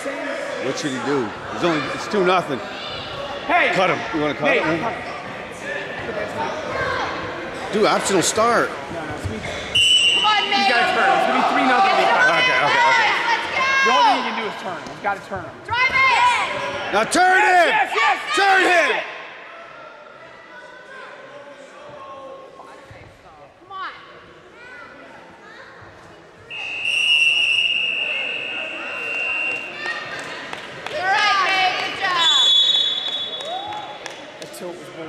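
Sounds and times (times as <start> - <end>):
voices echoing in a gym: 0.0 - 35.0.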